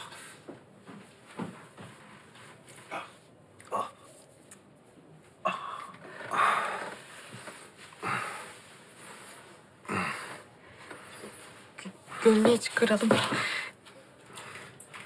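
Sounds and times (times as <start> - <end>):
gasping breaths: 5.4 - 11.4.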